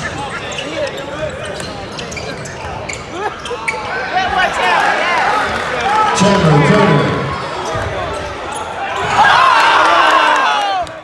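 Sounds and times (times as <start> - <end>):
crowd shouting and talking: 0.0 - 11.0.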